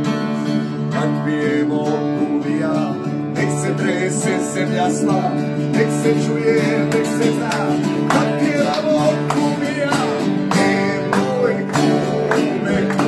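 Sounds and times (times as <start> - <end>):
acoustic guitars strummed: 0.0 - 13.0.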